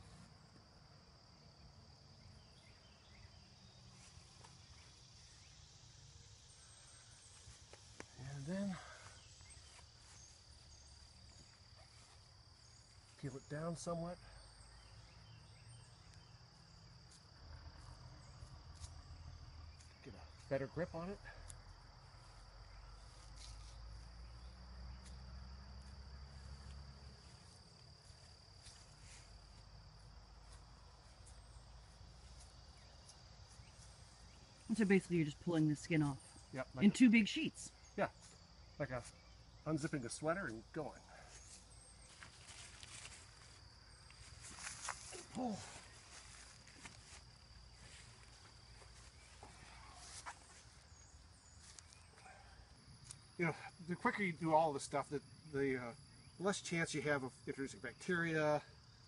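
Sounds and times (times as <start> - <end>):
crickets chirring: 0.0 - 59.0
insects singing: 0.0 - 59.0.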